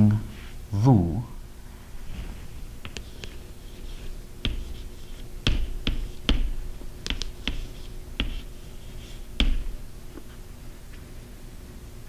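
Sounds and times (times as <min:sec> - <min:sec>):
chalk scratching: 0:02.1 - 0:09.8
chalk tapping on chalkboard: 0:02.8 - 0:09.8.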